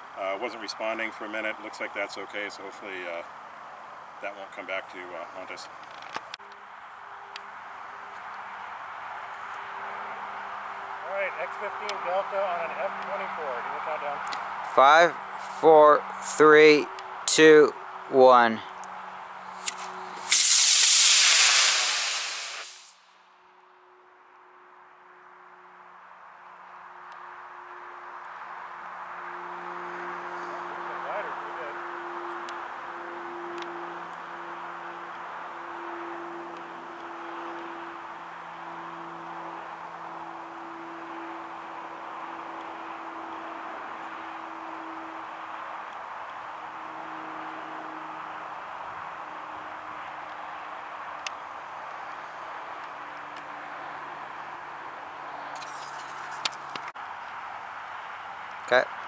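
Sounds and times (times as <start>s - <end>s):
rocket motor hissing: 19.4s - 23.0s.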